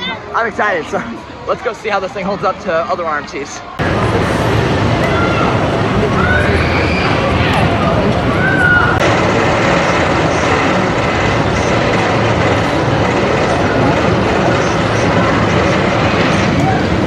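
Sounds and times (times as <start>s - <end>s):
roller coaster on steel track: 0.0s - 17.0s.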